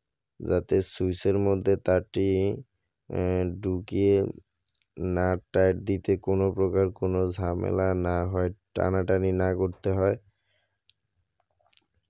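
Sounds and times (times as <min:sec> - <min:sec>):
man speaking: 0:00.4 - 0:10.2.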